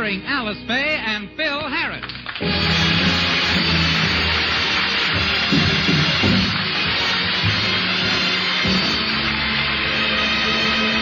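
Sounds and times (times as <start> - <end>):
orchestra playing on old recording: 0.0 - 11.0.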